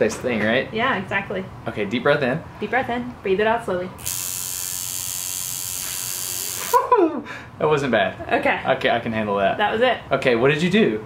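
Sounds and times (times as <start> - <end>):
tattoo machine buzzing: 4.0 - 6.9.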